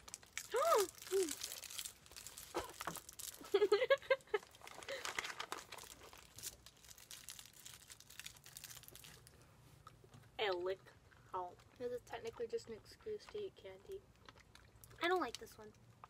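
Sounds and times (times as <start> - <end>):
plastic candy wrappers crinkling: 0.0 - 9.4, 11.5 - 16.0.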